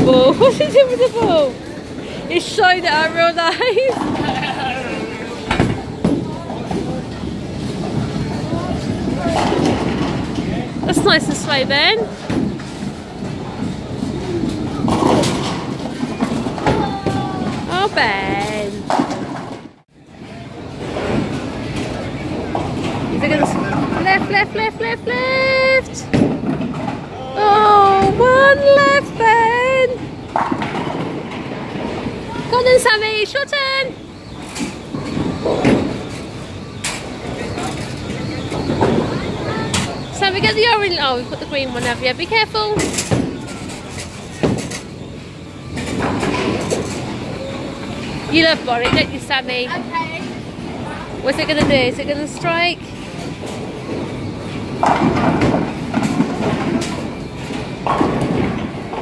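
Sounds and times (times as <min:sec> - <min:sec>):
background chatter: 0:00.0 - 0:59.0
bowling balls rolling: 0:00.0 - 0:59.0
bowling ball rolling on wooden lane: 0:03.8 - 0:17.7, 0:50.2 - 0:59.0.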